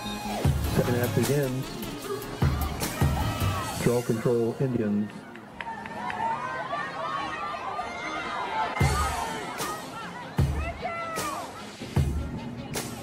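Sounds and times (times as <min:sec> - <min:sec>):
voices shouting and calling: 0:01.9 - 0:13.0.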